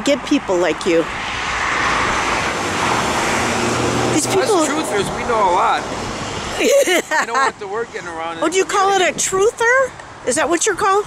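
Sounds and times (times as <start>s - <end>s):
cars passing on road: 0.0s - 11.0s.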